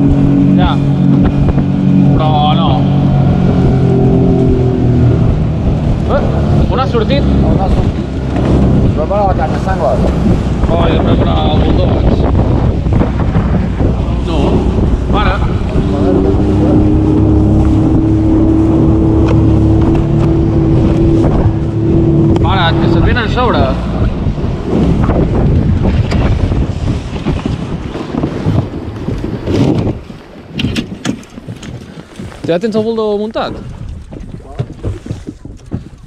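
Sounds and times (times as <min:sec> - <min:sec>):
hull slapping water: 0:00.0 - 0:36.0
outboard motor running: 0:00.0 - 0:36.0
wind buffeting microphone: 0:00.0 - 0:36.0.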